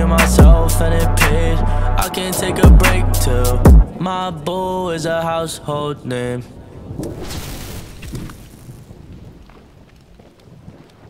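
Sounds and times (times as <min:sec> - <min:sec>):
faint crackles and ticks: 0:08.0 - 0:11.0.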